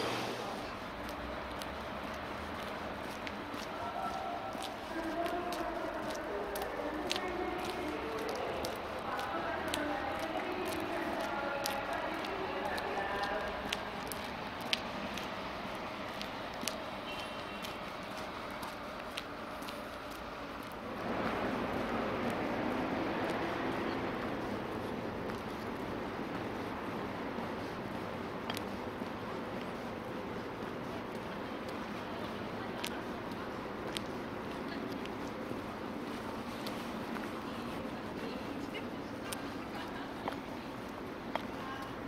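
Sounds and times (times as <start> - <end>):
vehicle noise rushing: 0.0 - 3.5, 20.2 - 29.0
distant indistinct voices: 0.0 - 42.0.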